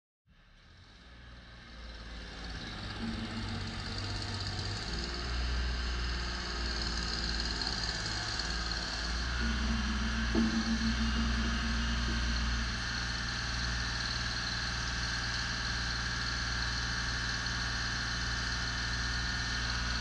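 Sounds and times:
diesel engine running: 0.6s - 20.0s.

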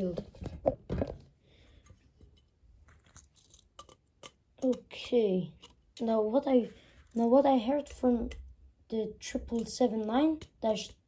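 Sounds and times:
light clicks and rustles of handling: 1.7s - 6.1s.

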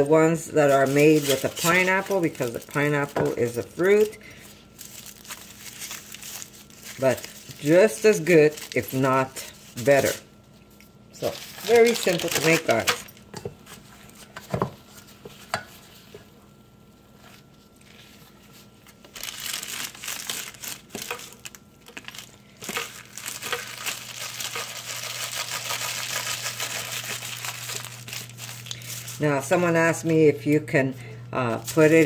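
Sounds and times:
parchment paper crinkling: 0.4s - 10.2s, 11.2s - 14.3s, 17.2s - 30.2s, 31.3s - 32.0s.

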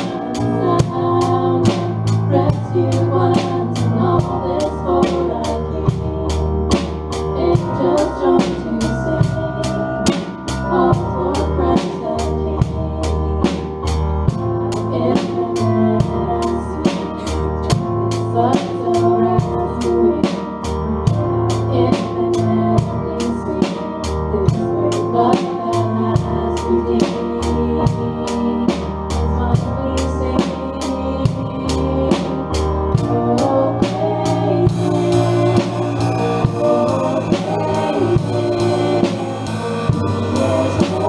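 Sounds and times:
bass and keyboard chords: 0.0s - 41.0s
worship band playing: 0.0s - 41.0s.

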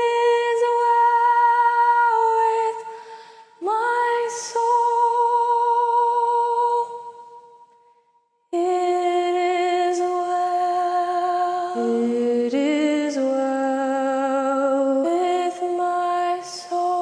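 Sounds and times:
woman singing a hymn: 0.0s - 2.9s, 3.6s - 7.1s, 8.6s - 17.0s
lower voice singing in harmony: 8.6s - 17.0s.

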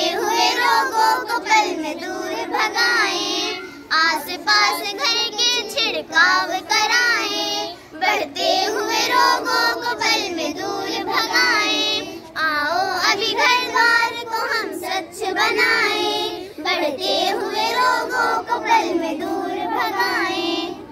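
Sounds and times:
girls singing in unison: 0.0s - 20.9s.

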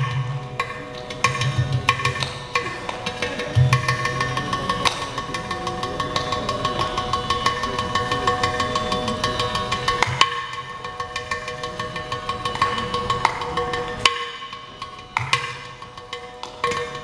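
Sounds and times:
hand drum strokes: 0.0s - 17.0s
steady drone: 0.8s - 17.0s.

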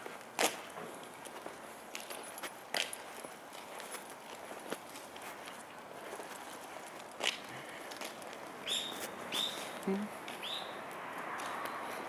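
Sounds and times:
dog paws tapping on road: 0.0s - 12.0s
footsteps on asphalt: 0.0s - 12.0s.

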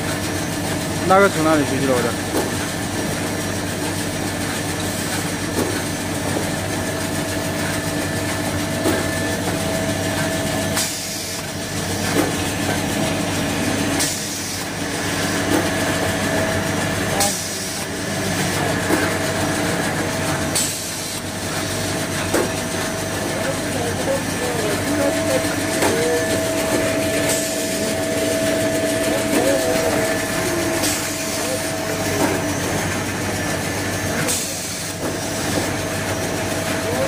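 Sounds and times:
machine mechanical hum: 0.0s - 37.0s.

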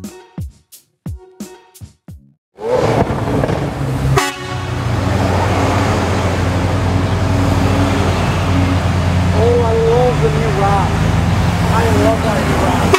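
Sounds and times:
sharp crack: 2.6s - 3.9s
car engine rumble: 2.6s - 12.9s.

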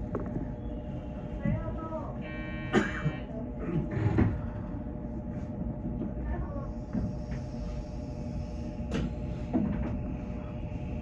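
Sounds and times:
steady low hum: 0.0s - 11.0s
train electronic buzzer tone: 2.2s - 3.3s.

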